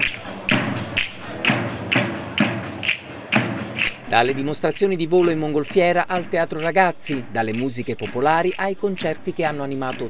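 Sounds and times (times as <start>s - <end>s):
frame drum beating: 0.0s - 10.0s.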